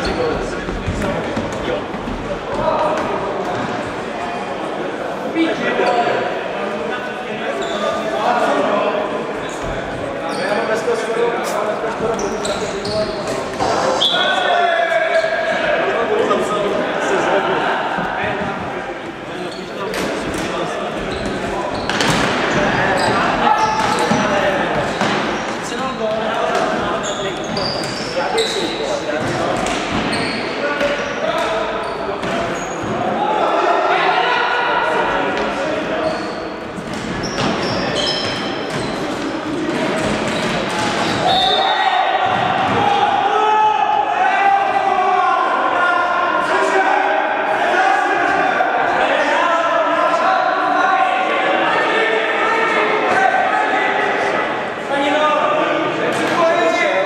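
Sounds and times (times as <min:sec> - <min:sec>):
shoe squeaks: 0:07.5 - 0:08.1, 0:09.5 - 0:10.8, 0:12.1 - 0:14.4, 0:19.4 - 0:19.9, 0:21.0 - 0:22.1, 0:22.9 - 0:26.2, 0:26.9 - 0:29.0, 0:30.1 - 0:33.0, 0:36.0 - 0:36.6, 0:37.2 - 0:39.4, 0:40.0 - 0:41.8.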